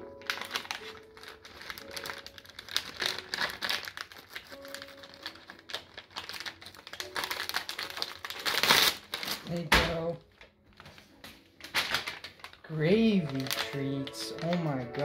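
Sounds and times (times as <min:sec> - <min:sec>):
wrapping paper crinkling and tearing: 0:00.0 - 0:15.0.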